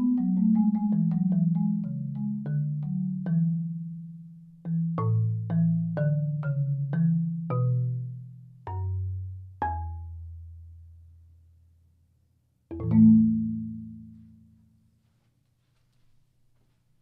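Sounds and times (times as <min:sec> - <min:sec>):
marimba played with soft mallets: 0:00.0 - 0:10.7, 0:12.7 - 0:14.8.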